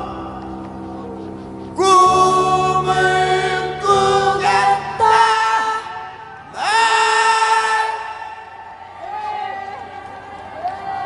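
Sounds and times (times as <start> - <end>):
man singing amplified: 0.0 - 8.7
faint crowd: 0.0 - 11.0.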